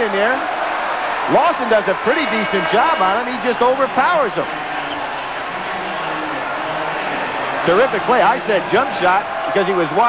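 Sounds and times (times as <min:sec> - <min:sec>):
crowd cheering: 0:00.0 - 0:10.0.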